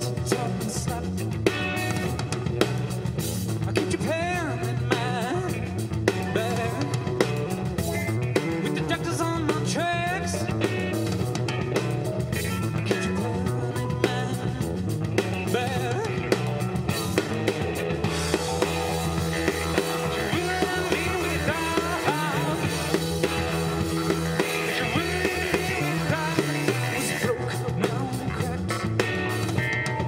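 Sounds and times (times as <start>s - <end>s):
drum kit: 0.0s - 30.0s
electric bass: 0.0s - 30.0s
electric guitar: 0.0s - 30.0s
keyboards: 0.0s - 30.0s.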